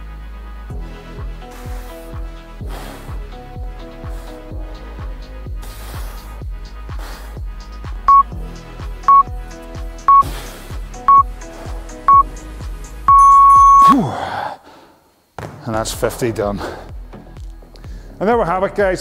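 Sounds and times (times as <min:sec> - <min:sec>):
background music with steady beat: 0:00.0 - 0:14.1, 0:15.4 - 0:19.0
long timer beep: 0:08.1 - 0:08.3, 0:09.1 - 0:09.3, 0:11.1 - 0:11.3, 0:12.1 - 0:12.3, 0:13.1 - 0:14.0
short timer beeps: 0:08.1 - 0:08.3, 0:13.1 - 0:13.9.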